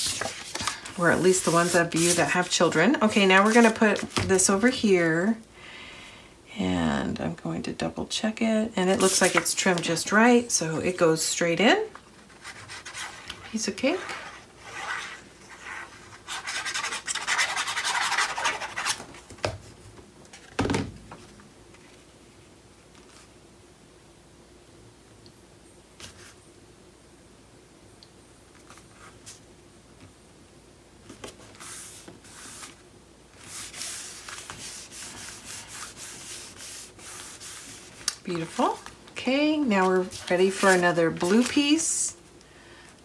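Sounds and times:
paper rubbing on paper: 0.0 - 3.8, 13.9 - 19.0, 33.4 - 38.9.

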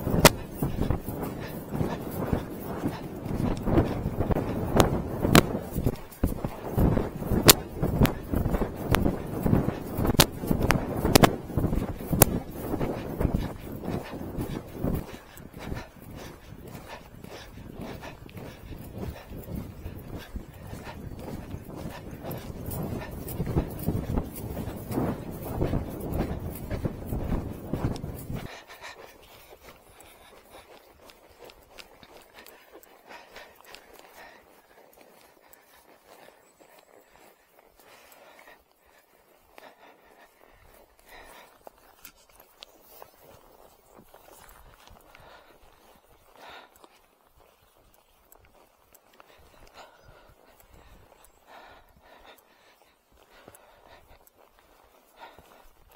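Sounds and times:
wind noise on microphone: 0.0 - 34.4, 39.5 - 46.7
horse hoofbeats on grass: 0.0 - 55.9.

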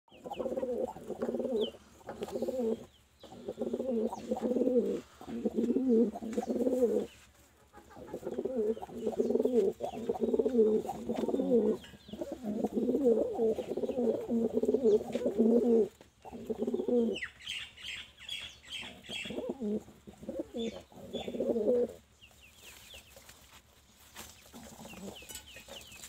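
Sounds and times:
pigeons cooing: 0.1 - 22.1, 24.4 - 26.0.

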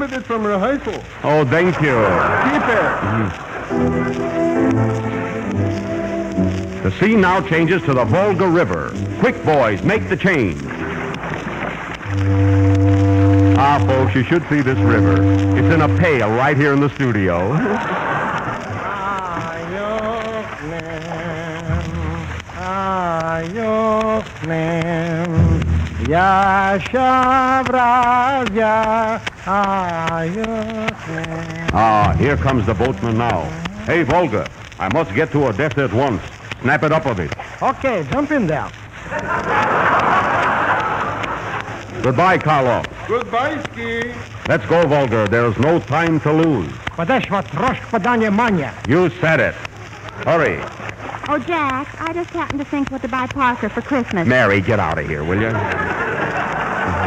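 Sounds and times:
noisy haze: 0.0 - 57.0
studio audience laughing: 1.9 - 3.9, 17.5 - 19.2, 39.0 - 42.1, 55.4 - 57.0
low boat horn note: 12.0 - 16.4.

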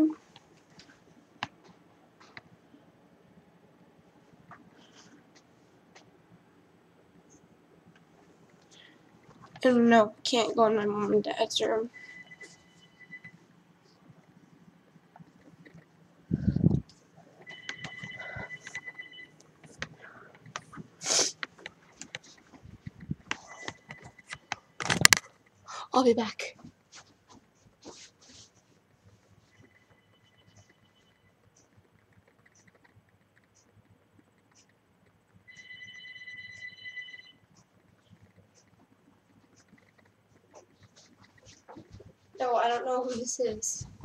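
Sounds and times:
electronic telephone ringing: 12.0 - 13.3, 17.4 - 19.4, 35.5 - 37.4.

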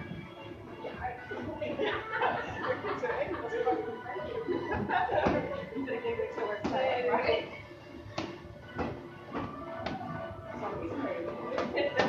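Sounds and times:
boxing gloves slapping pads: 8.2 - 10.1.

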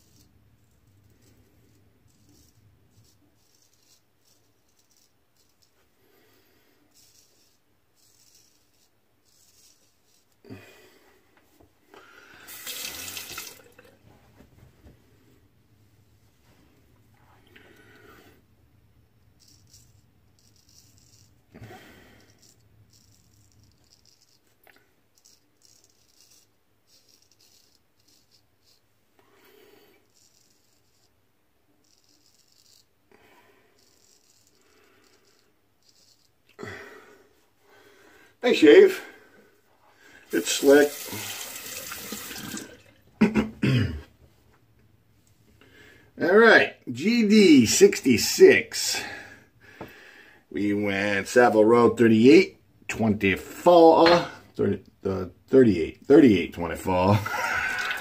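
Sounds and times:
razor scraping stubble: 0.0 - 5.8, 19.4 - 21.4, 25.2 - 28.9, 31.8 - 32.9.

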